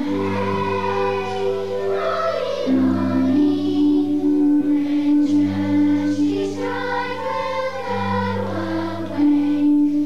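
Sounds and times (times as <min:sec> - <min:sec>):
children's choir singing: 0:00.0 - 0:10.0
low held accompaniment: 0:00.0 - 0:10.0.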